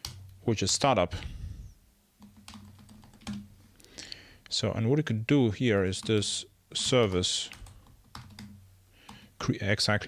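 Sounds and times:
computer keyboard typing: 0:00.0 - 0:00.2, 0:02.2 - 0:03.5, 0:06.0 - 0:09.2.

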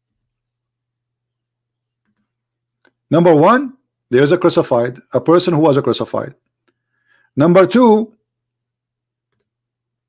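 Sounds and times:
man speaking: 0:03.1 - 0:06.4, 0:07.4 - 0:08.2.

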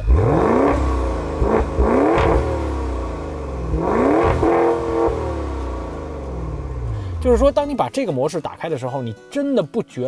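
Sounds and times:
car engine revving: 0:00.0 - 0:07.6.

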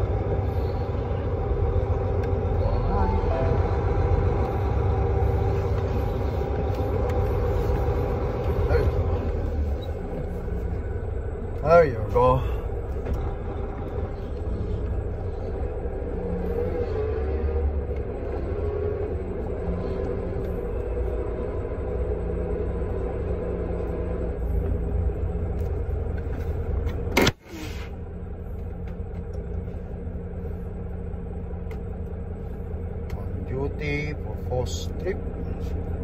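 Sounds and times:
diesel engine rumbling: 0:00.0 - 0:36.0.

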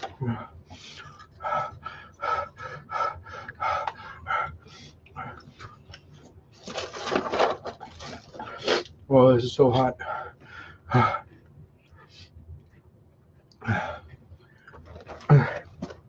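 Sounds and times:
man panting: 0:00.0 - 0:05.6, 0:10.0 - 0:11.3, 0:13.6 - 0:14.2, 0:15.2 - 0:15.9.

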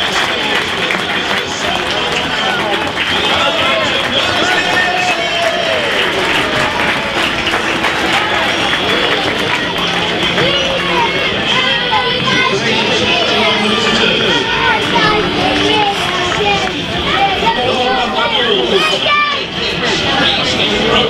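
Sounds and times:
people clapping: 0:00.0 - 0:19.3
indistinct crowd voices: 0:00.0 - 0:21.0.

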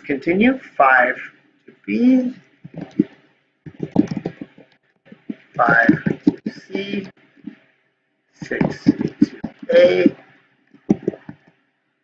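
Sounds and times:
keyboard key taps: 0:03.7 - 0:04.6.

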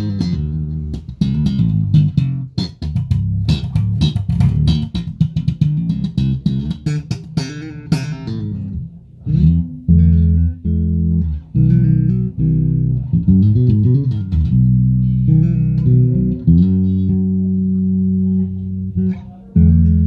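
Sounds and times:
electric bass playing: 0:00.0 - 0:20.0.

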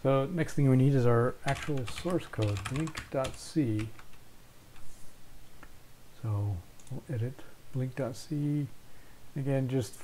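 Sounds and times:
low background hum: 0:00.0 - 0:10.0
computer mouse clicks: 0:06.8 - 0:07.0.

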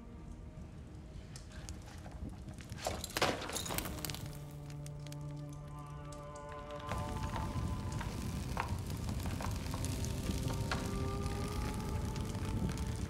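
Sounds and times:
log fire crackling: 0:00.3 - 0:13.0.

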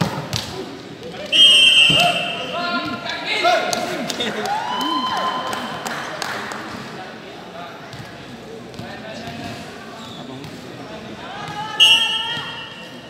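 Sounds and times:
players shouting and chattering: 0:00.0 - 0:13.0.

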